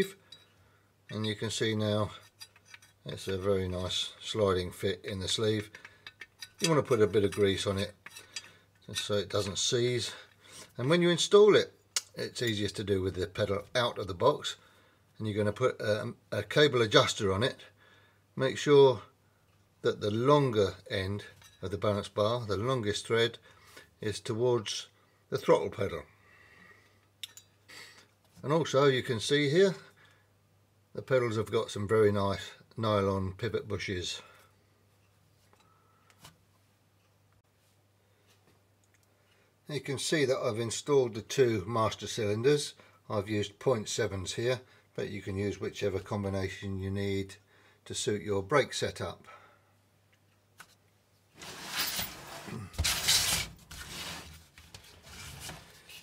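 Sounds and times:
faint breath: 0:14.6 - 0:15.1, 0:17.8 - 0:18.3, 0:26.1 - 0:27.1, 0:35.6 - 0:36.2, 0:47.5 - 0:47.8, 0:49.3 - 0:49.8
hands scraping steel box: 0:51.4 - 0:55.8.

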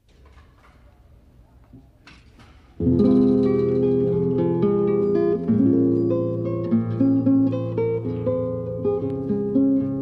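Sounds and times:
faint low noise: 0:00.0 - 0:10.0
guitar chord plucked: 0:02.8 - 0:10.0.

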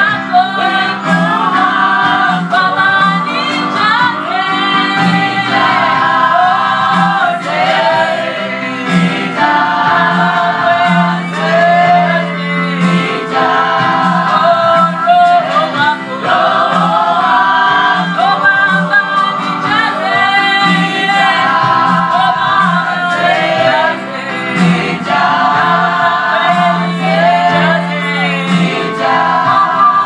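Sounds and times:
voices singing together: 0:00.0 - 0:30.0.

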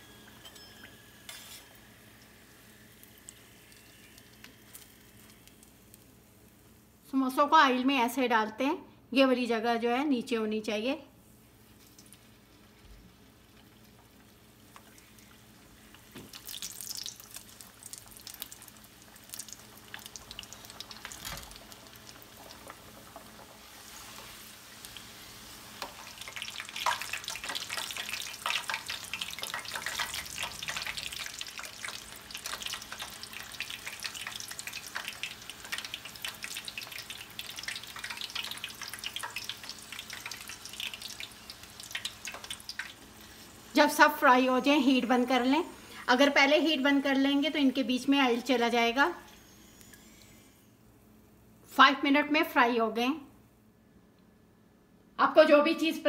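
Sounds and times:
oil sizzling and crackling: 0:00.0 - 0:07.1, 0:11.2 - 0:48.7.

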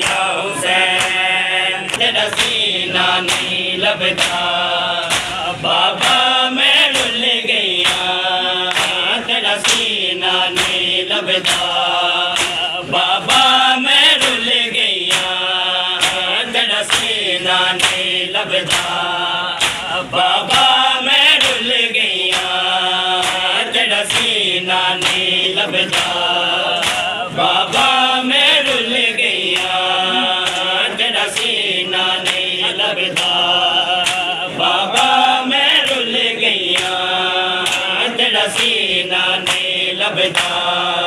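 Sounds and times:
crowd of men chanting: 0:00.0 - 0:41.0.

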